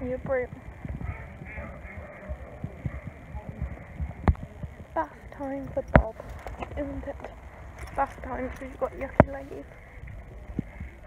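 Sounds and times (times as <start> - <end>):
hooves on hard ground: 0.0 - 11.0.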